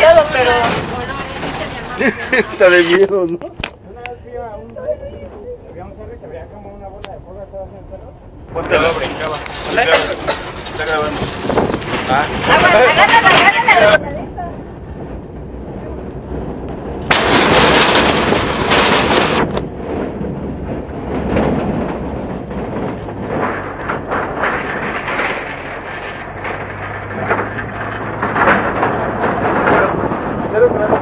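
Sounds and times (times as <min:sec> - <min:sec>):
tyres rumbling on gravel road: 0:00.0 - 0:31.0
wind noise: 0:08.3 - 0:31.0.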